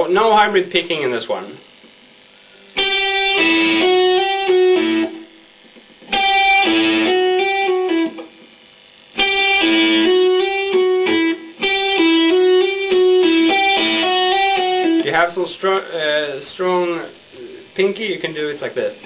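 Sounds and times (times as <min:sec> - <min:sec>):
fast electric guitar lick: 0:01.7 - 0:08.6, 0:09.2 - 0:19.0.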